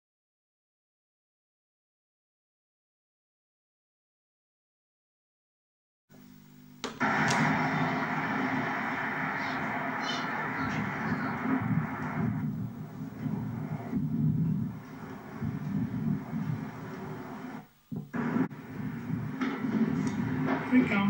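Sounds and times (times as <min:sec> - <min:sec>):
outdoor background noise: 0:06.8 - 0:21.0.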